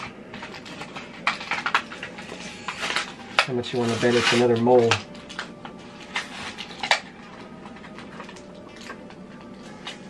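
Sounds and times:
plastic packaging crinkling: 0:00.0 - 0:10.0
plastic packaging rustling: 0:00.0 - 0:10.0.

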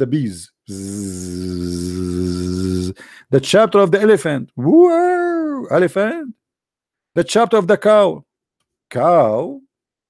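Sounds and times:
man imitating bee buzzing: 0:00.7 - 0:03.1.

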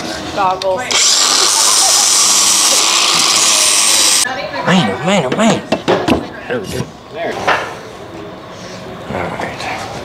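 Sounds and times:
power tool drilling into plywood: 0:00.9 - 0:04.2.

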